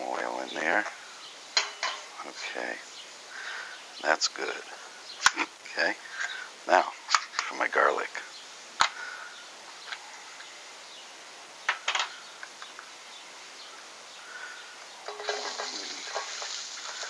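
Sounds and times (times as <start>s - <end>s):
garlic sizzling in hot oil: 14.2s - 17.0s.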